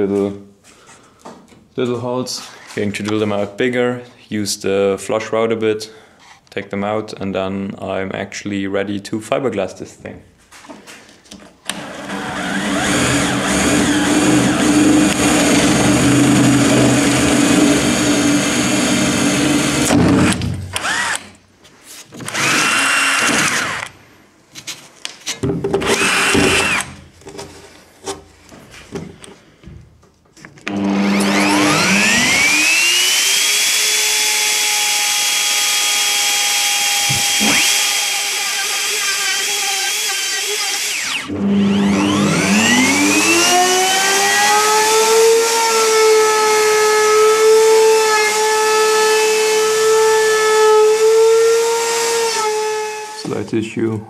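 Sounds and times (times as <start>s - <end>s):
router whining: 11.6s - 21.4s, 22.2s - 24.0s, 25.8s - 27.0s, 30.6s - 53.2s
drill boring through wood: 11.7s - 21.3s, 22.2s - 24.0s, 25.8s - 26.9s, 30.7s - 53.3s.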